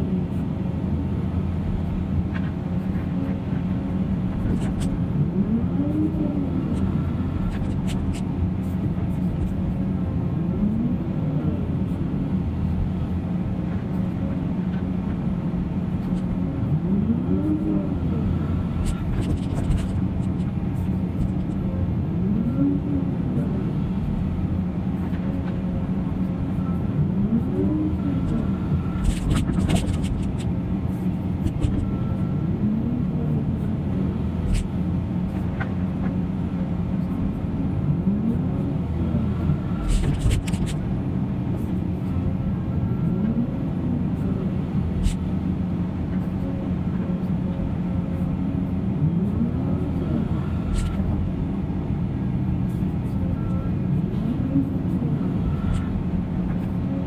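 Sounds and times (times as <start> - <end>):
excavator diesel engine: 0.0 - 57.0
screening plant diesel engine: 0.0 - 57.0.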